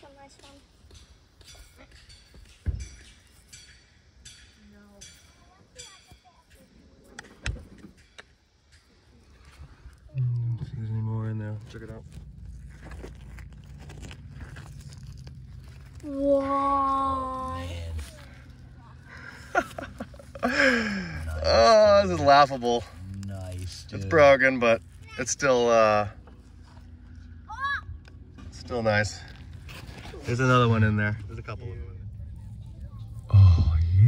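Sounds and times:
digging in stony dirt: 0:09.9 - 0:25.2
person humming: 0:10.1 - 0:10.8, 0:33.3 - 0:34.0.

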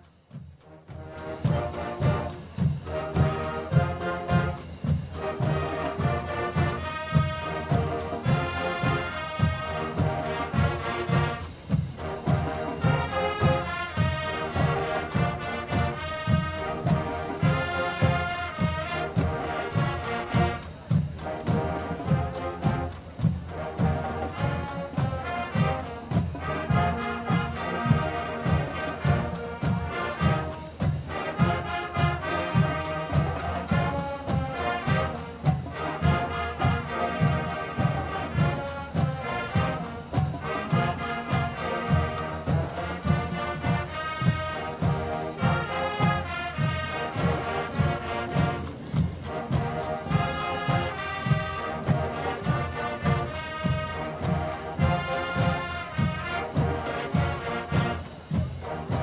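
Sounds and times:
brass chords with sousaphones: 0:00.0 - 0:59.0
drumline beat: 0:00.0 - 0:59.0.

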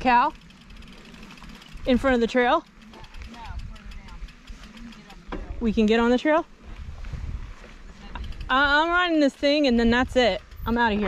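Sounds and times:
bike riding noise and wind rumble: 0:00.0 - 0:11.0.

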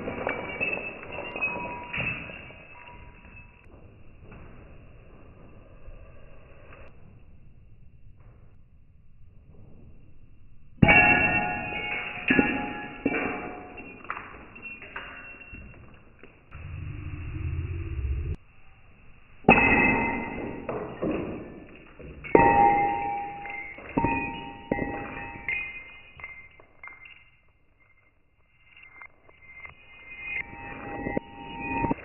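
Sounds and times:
glass breaking on concrete: 0:00.0 - 0:03.6, 0:10.8 - 0:15.9, 0:19.5 - 0:32.0
deep ringing tones: 0:16.5 - 0:18.4, 0:22.2 - 0:32.0
low hum: 0:16.5 - 0:20.4, 0:22.2 - 0:32.0.

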